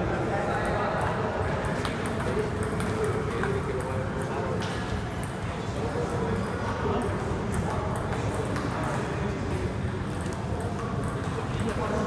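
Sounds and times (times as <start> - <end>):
murmur of voices: 0.0 - 12.0
table tennis balls clicking: 0.5 - 5.6, 6.4 - 12.0.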